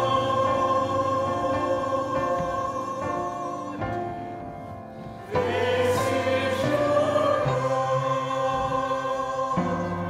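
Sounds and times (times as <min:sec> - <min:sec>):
mixed choir singing: 0:00.0 - 0:10.0.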